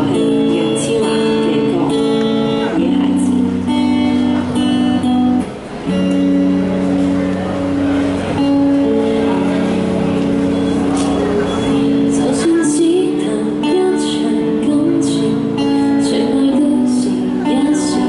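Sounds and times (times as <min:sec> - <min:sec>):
woman singing ballad: 0:00.0 - 0:03.4, 0:12.2 - 0:18.0
electric guitar through small amp: 0:00.0 - 0:18.0.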